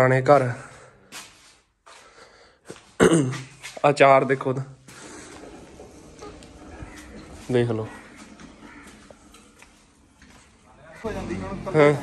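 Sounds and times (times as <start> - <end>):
man clearing throat: 3.0 - 3.6
man speaking: 7.4 - 8.1.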